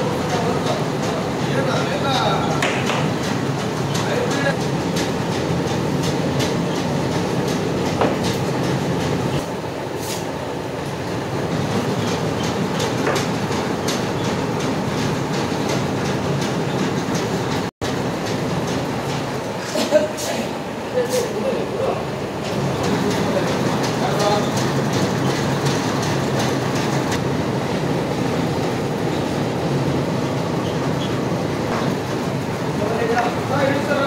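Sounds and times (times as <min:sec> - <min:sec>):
steady machine noise: 0:00.0 - 0:34.0
irregular clicks and knocks: 0:11.7 - 0:19.3.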